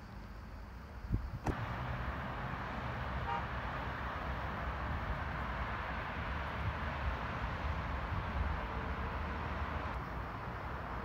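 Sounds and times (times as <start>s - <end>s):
distant city traffic rumble: 0.0s - 11.0s
car horn toot: 3.2s - 3.6s.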